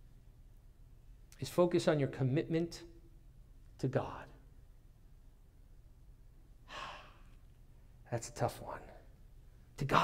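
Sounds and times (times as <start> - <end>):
man breathing: 6.6 - 7.4.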